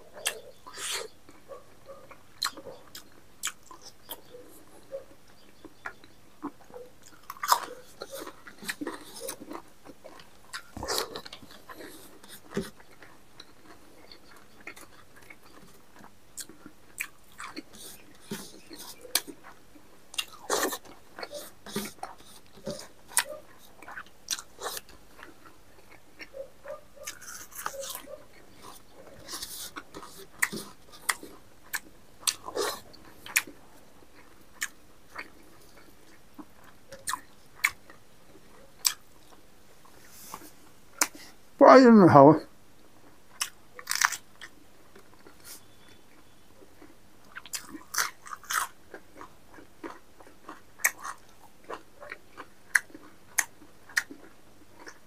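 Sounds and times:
man chewing and biting: 0:00.0 - 0:41.4, 0:42.9 - 0:55.0.

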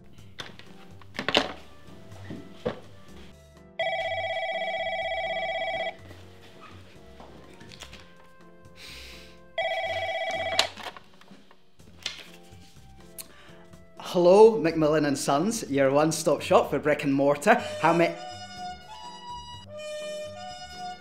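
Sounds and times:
quiet background music: 0:00.0 - 0:21.0
telephone ringing with warbling trill: 0:03.8 - 0:06.0, 0:09.6 - 0:10.7.

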